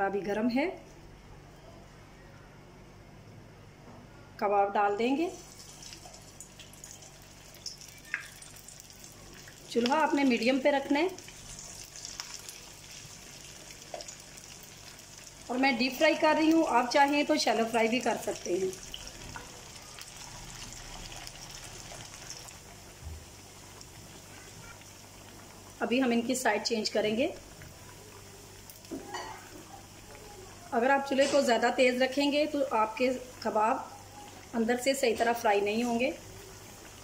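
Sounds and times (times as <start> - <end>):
patty sizzling in hot oil: 5.3 - 37.0.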